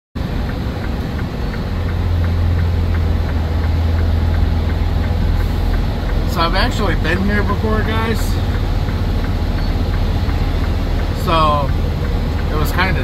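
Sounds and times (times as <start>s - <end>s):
diesel truck engine running: 0.2s - 13.0s
light regular ticking: 0.2s - 13.0s.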